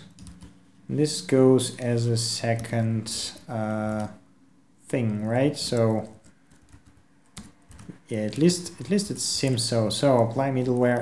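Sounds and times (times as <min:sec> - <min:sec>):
computer keyboard keystrokes: 0:00.0 - 0:00.6, 0:05.0 - 0:11.0.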